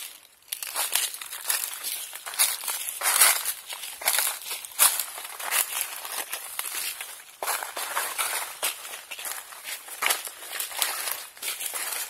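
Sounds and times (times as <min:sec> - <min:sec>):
footsteps crunching on dry leaves: 0:00.0 - 0:12.0.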